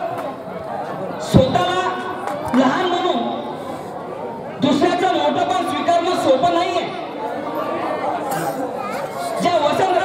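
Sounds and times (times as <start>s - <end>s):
man speaking into microphone: 1.2s - 3.7s, 4.5s - 7.1s, 9.2s - 10.0s.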